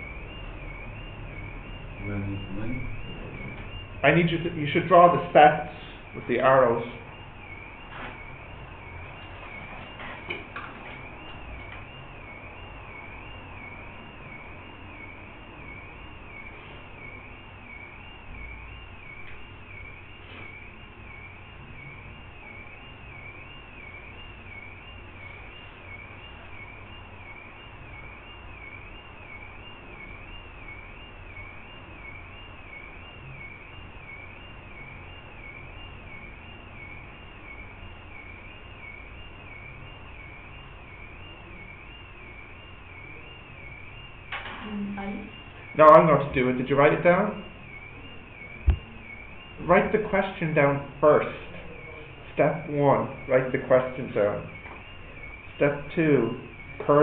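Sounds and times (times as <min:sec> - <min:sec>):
wavering high-pitched electronic whine: 0:00.0 - 0:57.0.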